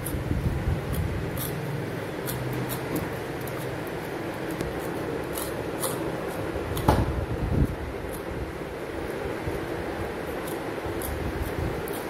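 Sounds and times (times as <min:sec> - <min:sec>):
fan-like hum: 0:00.0 - 0:12.0.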